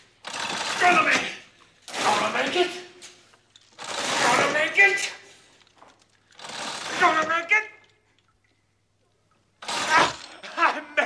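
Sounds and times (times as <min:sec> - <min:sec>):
man yelling loudly: 0:00.7 - 0:01.4, 0:04.2 - 0:05.2, 0:06.9 - 0:07.8, 0:09.8 - 0:11.0.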